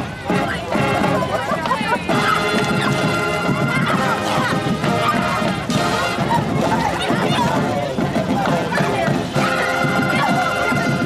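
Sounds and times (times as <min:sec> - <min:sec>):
drums and crashing percussion: 0:00.0 - 0:11.0
brass sustained notes: 0:02.1 - 0:06.8.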